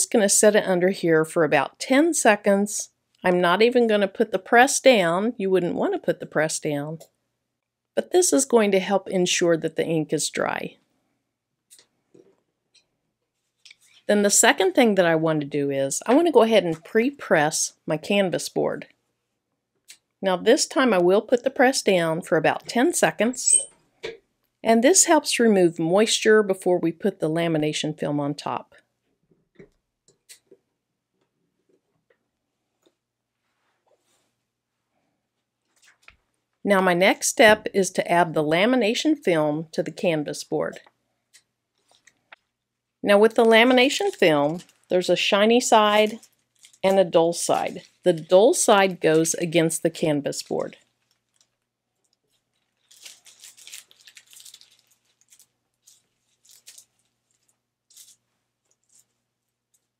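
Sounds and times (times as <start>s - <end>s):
plastic film crinkling: 41.3s - 42.5s, 43.3s - 49.5s, 50.3s - 59.9s.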